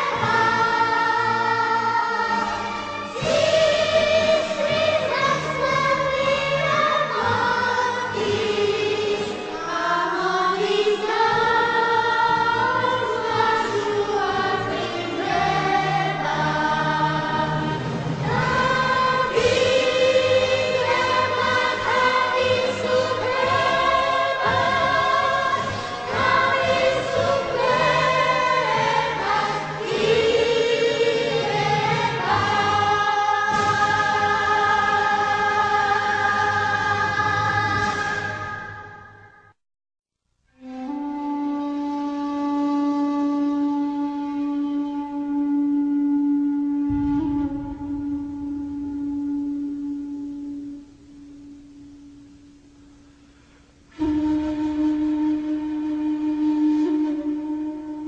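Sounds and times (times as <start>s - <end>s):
choir singing sustained chords: 0.0s - 39.6s, 44.1s - 57.9s.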